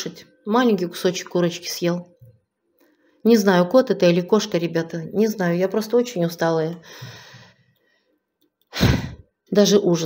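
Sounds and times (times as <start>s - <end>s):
sharp breath in: 6.9s - 8.1s.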